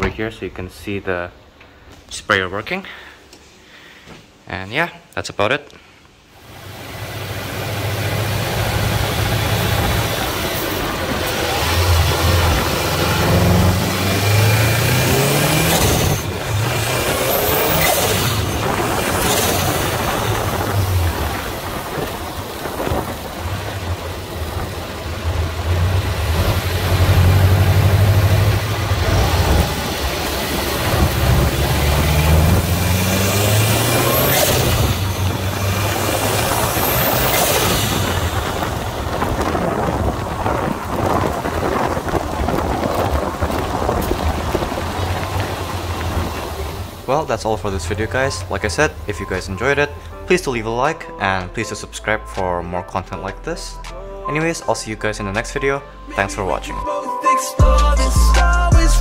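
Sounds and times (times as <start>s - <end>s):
wind and road noise: 6.3s - 50.6s
car engine revving: 6.4s - 50.3s.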